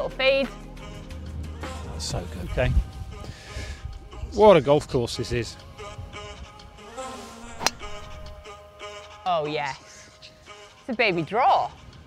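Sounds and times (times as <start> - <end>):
background music with steady tones: 0.0 - 12.0
golf driver striking ball: 7.4 - 8.4.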